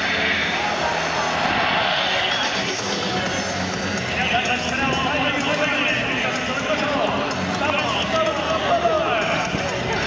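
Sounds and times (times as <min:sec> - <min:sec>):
people talking: 0:02.2 - 0:10.0.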